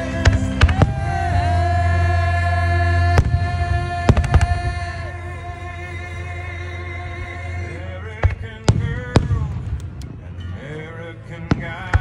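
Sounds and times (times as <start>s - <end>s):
person singing: 0.0s - 9.8s, 10.4s - 12.0s
music with sustained tones: 0.0s - 12.0s.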